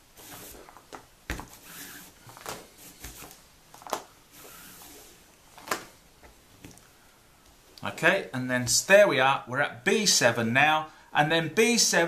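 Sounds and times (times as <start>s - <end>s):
cord sliding against cord: 0.1s - 6.8s.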